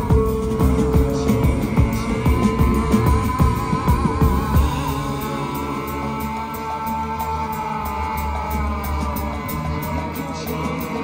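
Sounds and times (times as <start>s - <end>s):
rock band playing loudly: 0.0s - 11.0s.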